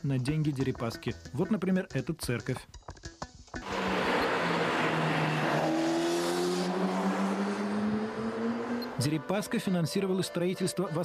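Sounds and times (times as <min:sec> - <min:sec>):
tyre noise on road: 0:03.6 - 0:08.8
car engine hum: 0:03.6 - 0:09.4.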